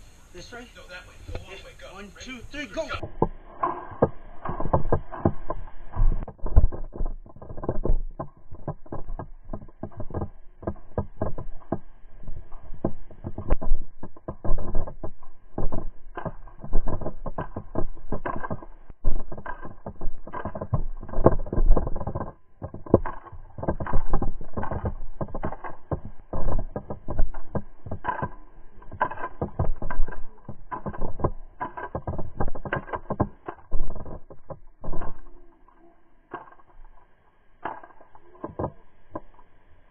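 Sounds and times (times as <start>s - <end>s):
gear jostling against camera: 0.0s - 39.6s.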